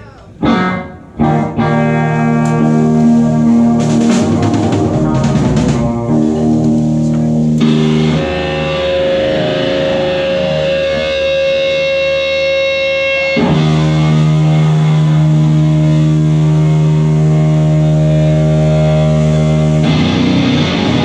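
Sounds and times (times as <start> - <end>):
live rock band sustained chords: 0.4 - 21.0.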